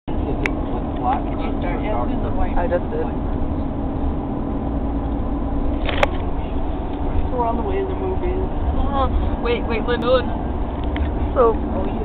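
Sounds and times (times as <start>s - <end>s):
car cabin rumble: 0.1s - 12.0s.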